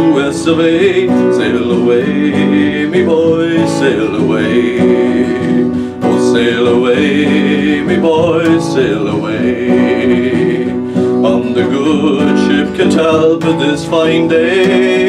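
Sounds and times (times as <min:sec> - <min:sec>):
man singing: 0:00.0 - 0:15.0
strummed acoustic guitar: 0:00.0 - 0:15.0.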